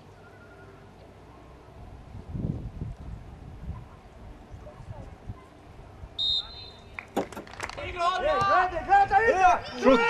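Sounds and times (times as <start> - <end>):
referee's whistle blast: 6.2 - 6.9
men shouting excitedly: 7.9 - 10.0.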